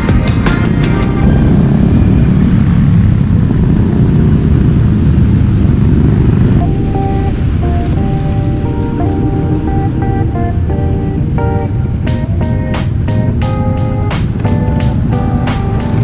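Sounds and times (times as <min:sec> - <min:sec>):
background music with a beat: 0:00.0 - 0:01.6, 0:07.0 - 0:16.0
motorcycles rumbling: 0:00.0 - 0:16.0.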